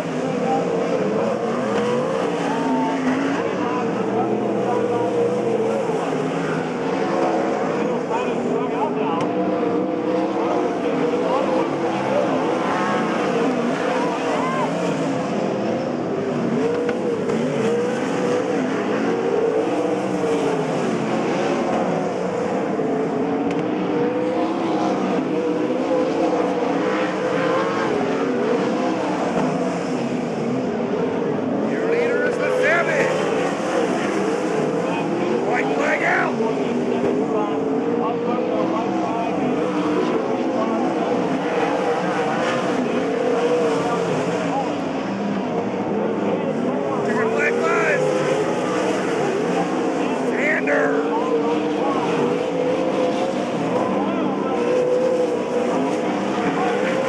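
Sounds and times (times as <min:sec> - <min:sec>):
race car engines running hard: 0:00.0 - 0:57.0.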